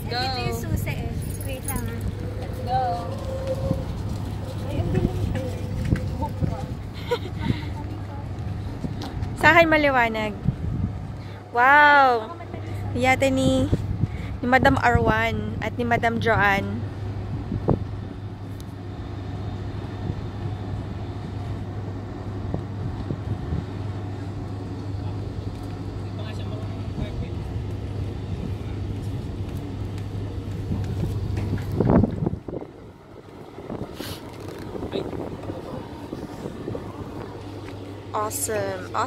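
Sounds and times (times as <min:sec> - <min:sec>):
engine humming: 0:00.0 - 0:39.0
faint voices: 0:34.4 - 0:39.0.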